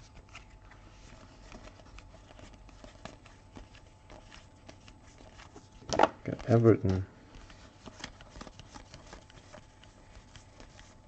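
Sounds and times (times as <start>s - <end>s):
trading cards sliding and rustling: 0.0s - 11.0s.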